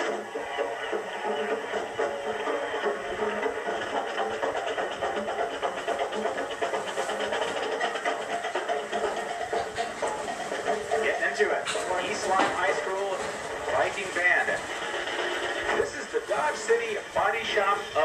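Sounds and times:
marching band playing: 0.0s - 18.0s.

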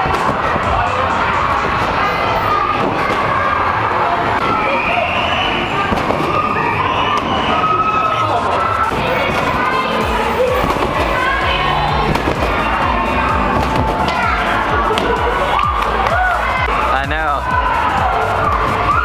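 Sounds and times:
children shouting: 0.0s - 19.0s
music: 0.0s - 19.0s
overlapping voices: 8.4s - 19.0s.

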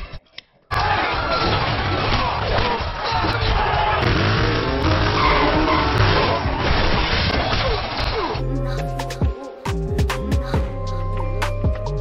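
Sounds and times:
tyres skidding: 3.6s - 6.7s
background music: 8.4s - 12.0s.

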